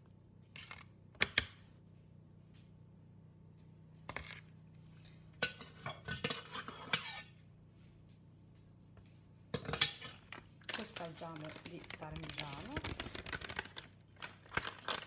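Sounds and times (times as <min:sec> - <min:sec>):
metal spoon scraping foil tray: 0:05.6 - 0:07.3.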